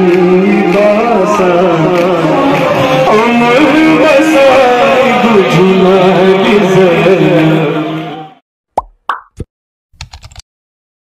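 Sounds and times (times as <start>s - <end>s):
chanted lament: 0.0s - 8.4s
pop sound effects: 8.8s - 9.5s.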